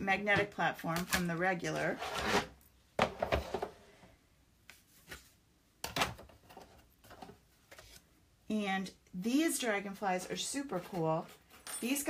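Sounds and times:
plastic plates knocking and scraping: 1.9 - 3.8.

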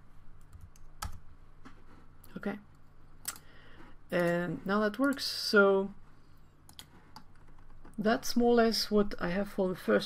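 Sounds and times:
computer keyboard clicks: 0.4 - 1.2.

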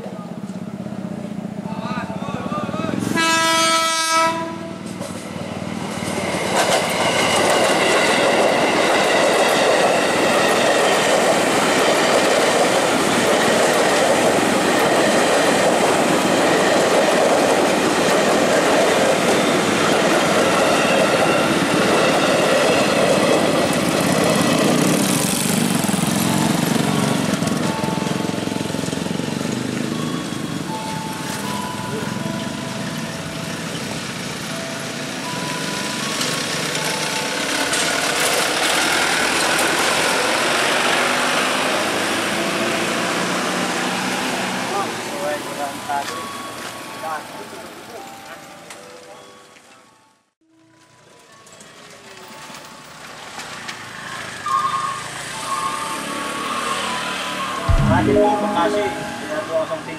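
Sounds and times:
train horn: 3.0 - 4.9
train wheels clattering on rails: 4.8 - 26.3.

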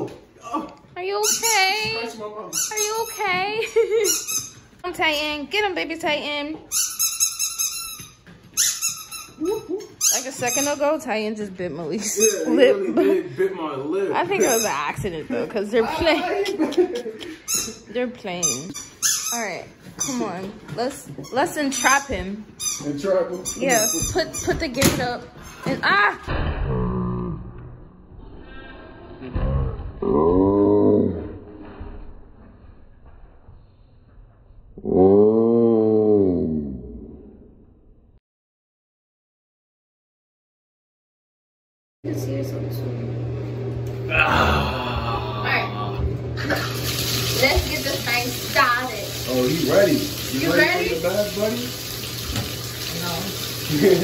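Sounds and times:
squeaky toy squeaking: 1.1 - 4.8, 6.6 - 11.0, 12.0 - 12.7, 14.4 - 15.0, 17.4 - 20.4, 21.2 - 24.8
man yelling in pain: 44.1 - 46.0.

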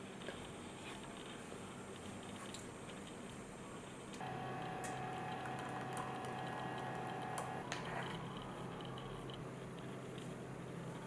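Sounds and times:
small motor whining: 4.2 - 7.6
low hum: 4.2 - 9.6.

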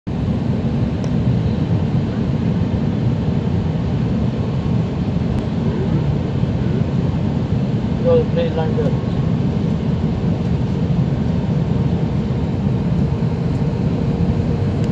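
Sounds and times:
airplane cabin engine rumble: 0.1 - 14.9.

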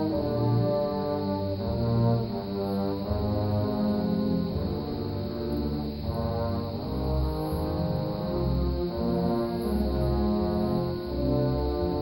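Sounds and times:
orchestra playing slow chords: 0.0 - 12.0.

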